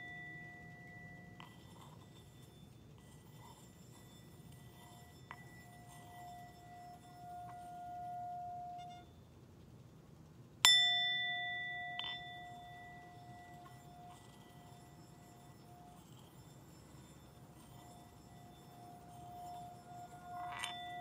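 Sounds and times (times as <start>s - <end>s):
singing bowl ringing when rubbed: 0.0s - 9.2s, 10.6s - 21.0s
singing bowl struck: 10.6s - 21.0s.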